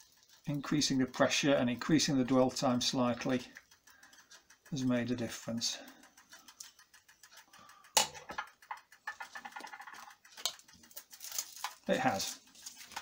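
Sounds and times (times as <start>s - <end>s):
foil crinkling: 9.2s - 13.0s.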